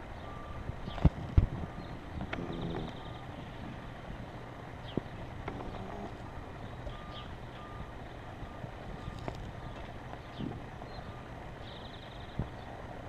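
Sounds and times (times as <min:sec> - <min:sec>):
short faint beeps: 0:06.2 - 0:07.9.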